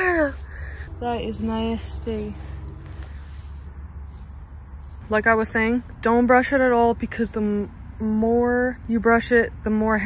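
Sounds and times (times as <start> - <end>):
high-pitched insect chorus: 0.0 - 10.0
low steady rumble: 0.0 - 10.0.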